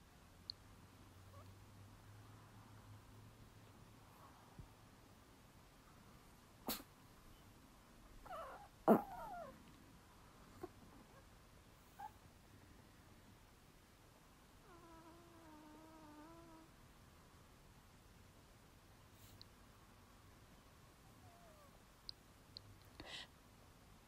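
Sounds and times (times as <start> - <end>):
small dog whining: 8.2 - 9.6, 11.9 - 12.2, 14.6 - 16.7, 21.0 - 21.8.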